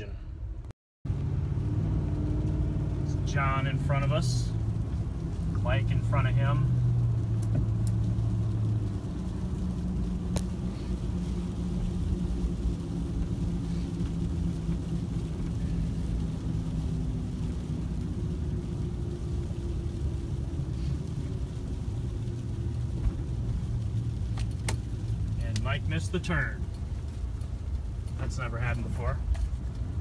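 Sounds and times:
vehicle engine and road rumble: 0.0 - 30.0.

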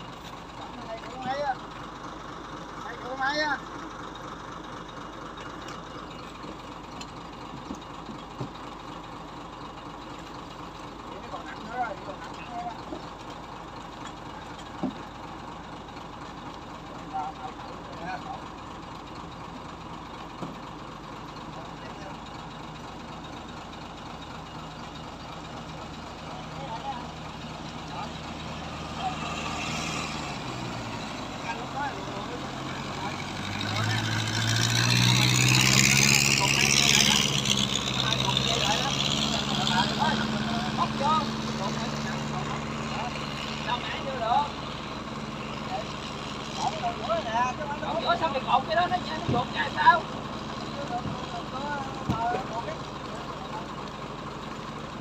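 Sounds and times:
truck engine running: 0.0 - 55.0.

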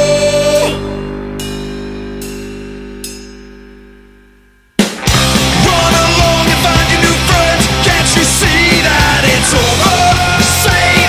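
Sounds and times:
punk rock band playing: 0.0 - 3.3, 4.8 - 11.0
held guitar chord ringing: 0.0 - 7.3.

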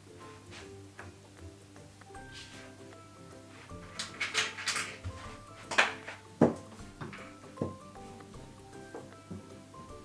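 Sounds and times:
quiet background music: 0.0 - 10.0
pieces clacking on whiteboard: 3.7 - 7.8.

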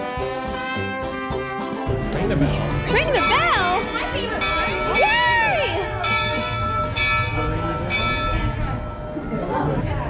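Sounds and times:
locomotive bell ringing: 2.5 - 10.0.

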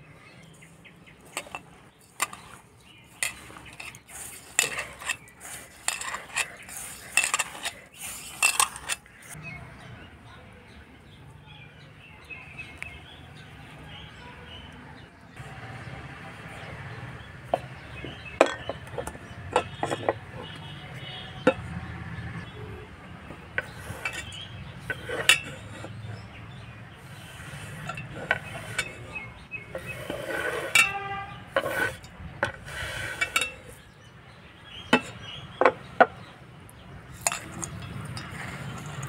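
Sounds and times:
knocks and clinks in metal bowl: 17.5 - 21.6, 23.6 - 25.9, 37.2 - 39.0.

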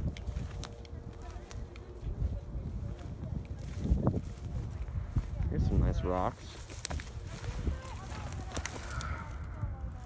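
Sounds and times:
light crackling clicks: 0.0 - 2.0, 8.2 - 9.2
rustling through dry grass: 0.0 - 10.0.

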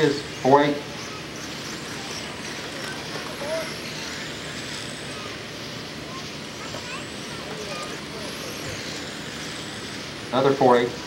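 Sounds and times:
high electric motor whine: 0.0 - 11.0.

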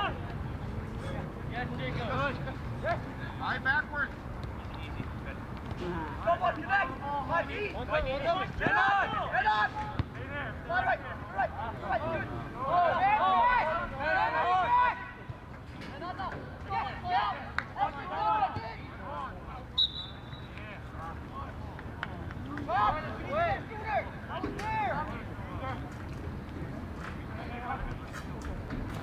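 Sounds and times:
players shouting calls: 5.9 - 25.7.

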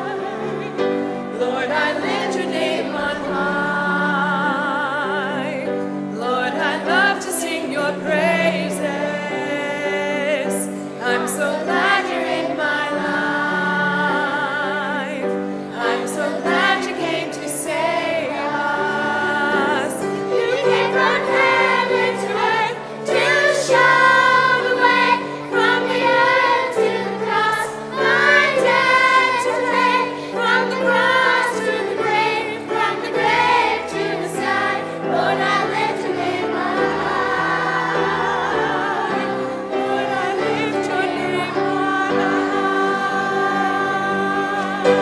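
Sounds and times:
choir and congregation singing hymn: 0.0 - 45.0.

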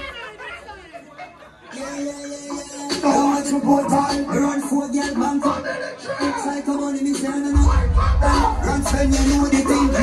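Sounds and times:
party crowd chattering: 0.0 - 10.0
dancehall music: 1.7 - 10.0.

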